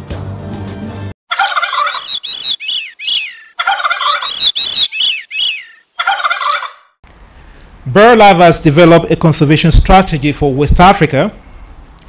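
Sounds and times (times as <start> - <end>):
harsh bird calls: 1.3 - 7.0.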